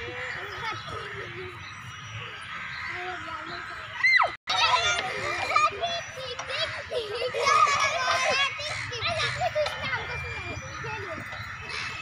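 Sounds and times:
children talking and calling out: 0.0 - 12.0.

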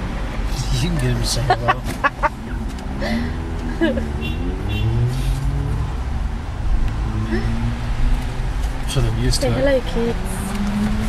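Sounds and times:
car running at low speed: 0.0 - 11.0.

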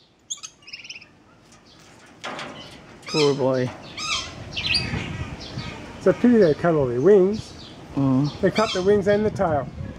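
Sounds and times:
high bird chirps: 0.0 - 1.9, 2.5 - 5.8
bird squawk: 0.3 - 1.2, 2.6 - 5.9, 8.5 - 9.0.

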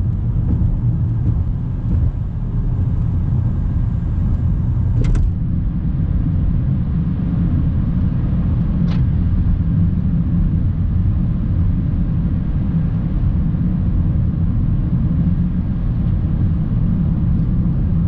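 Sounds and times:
car cabin road and engine rumble: 0.0 - 18.0.

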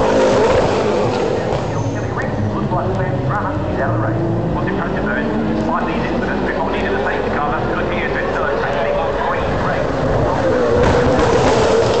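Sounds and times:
spectators chattering: 0.0 - 11.1
race car engine: 0.0 - 12.0.

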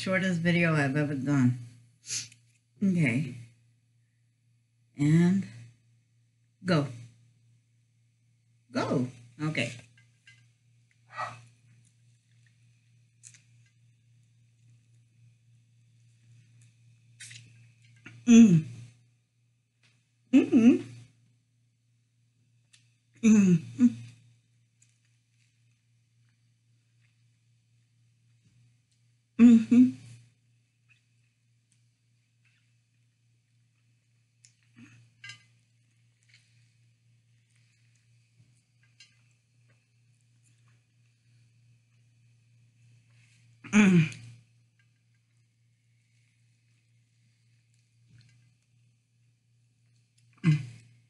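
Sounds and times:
low steady hum: 0.0 - 51.0
wet squishing of mango bitten: 13.2 - 13.6, 17.2 - 18.2.

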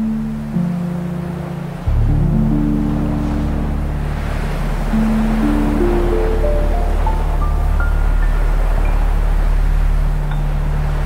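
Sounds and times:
dark ambient synth music: 0.0 - 11.0
sea waves: 0.0 - 11.0.

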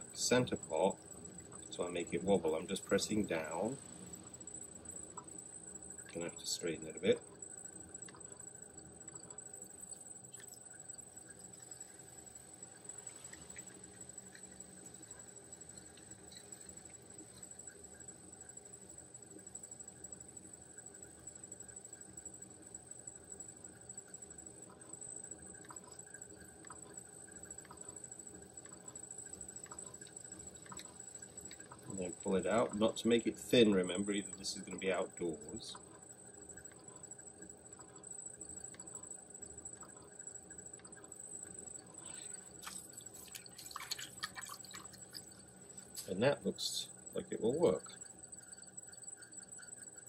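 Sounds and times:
potter's wheel humming: 0.0 - 50.0
hands shaping wet clay: 42.0 - 46.2.

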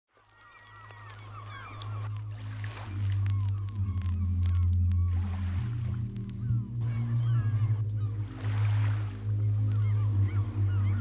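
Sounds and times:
bird calls: 0.2 - 11.0.

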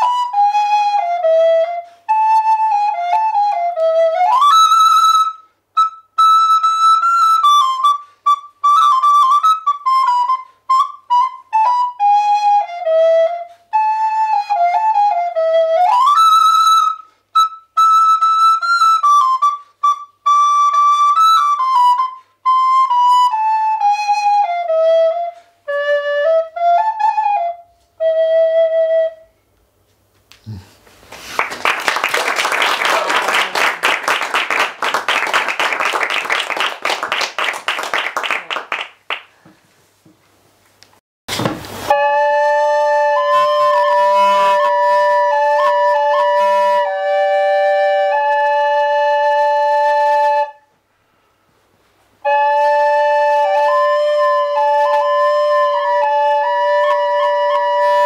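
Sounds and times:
bamboo flute melody: 0.0 - 29.5, 41.8 - 50.8, 52.2 - 58.0
wooden flute long notes: 0.0 - 29.6, 41.9 - 50.8, 52.2 - 58.0.

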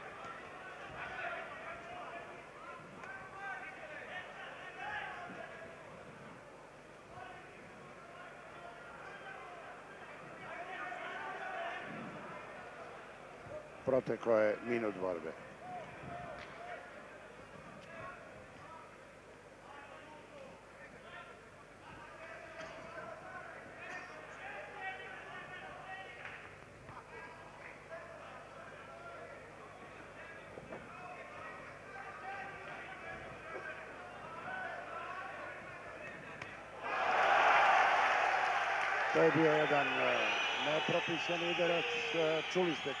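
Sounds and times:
crowd cheering loudly: 36.8 - 43.0.

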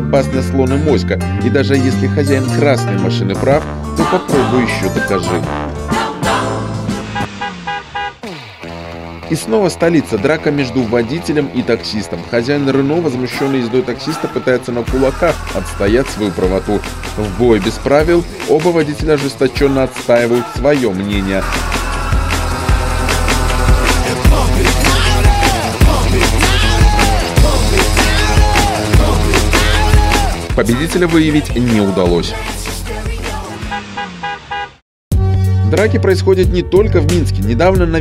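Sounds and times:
background music: 0.0 - 38.0
car horn honking: 5.2 - 8.2, 33.5 - 34.8.

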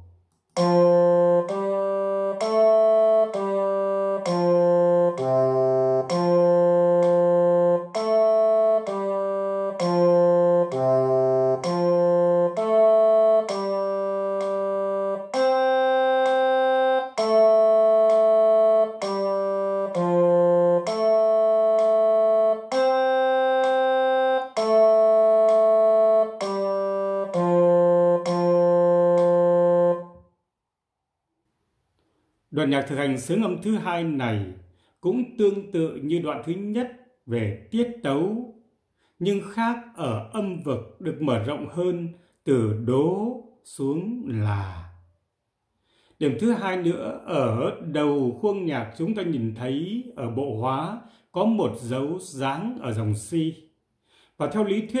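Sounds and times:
keyboard instrument melody: 0.0 - 30.5.

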